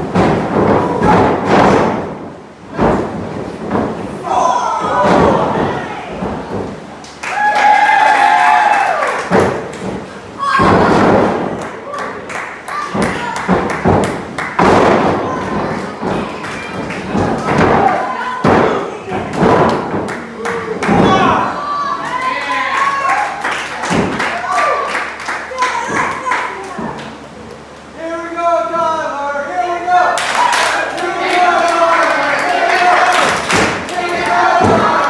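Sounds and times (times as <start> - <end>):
bodies slamming onto wrestling ring: 0.0 - 4.2, 4.8 - 6.8, 9.3 - 11.6, 13.6 - 18.8, 33.2 - 35.0
spectators shouting: 30.1 - 35.0.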